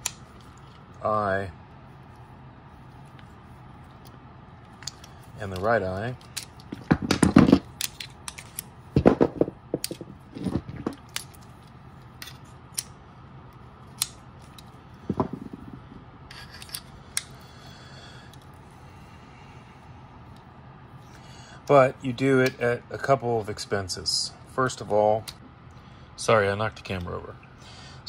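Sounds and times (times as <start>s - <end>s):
heavier knock: 15.1s - 15.8s.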